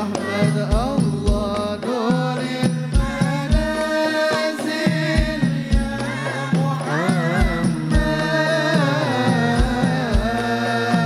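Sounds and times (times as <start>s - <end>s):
frame drums: 0.0s - 11.0s
men singing a hymn together: 0.0s - 11.0s.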